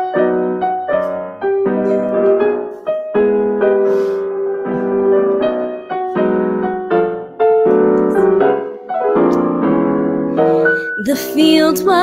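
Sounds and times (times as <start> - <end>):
piano chords from small speaker: 0.0 - 12.0.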